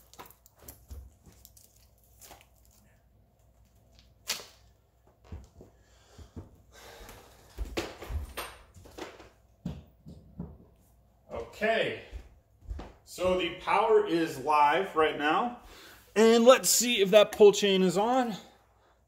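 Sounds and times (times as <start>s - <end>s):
faint knocks and thumps: 7.6s - 10.9s.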